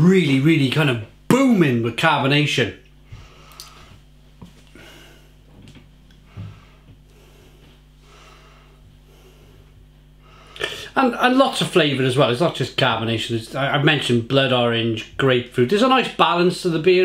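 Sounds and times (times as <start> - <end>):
faint breaths: 4.7 - 5.5, 6.2 - 11.0.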